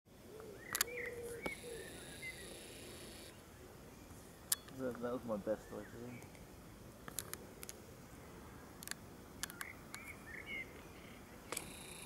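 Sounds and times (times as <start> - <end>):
bird chirps: 0.3 - 4.8, 9.4 - 12.0.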